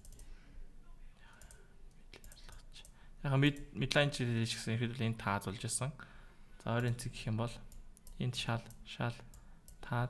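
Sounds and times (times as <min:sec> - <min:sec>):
faint computer mouse clicks: 0:00.0 - 0:00.3, 0:01.3 - 0:03.7.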